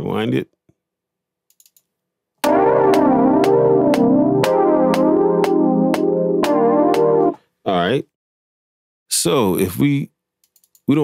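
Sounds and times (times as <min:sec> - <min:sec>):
synthesizer sustained chord: 0:02.4 - 0:07.4.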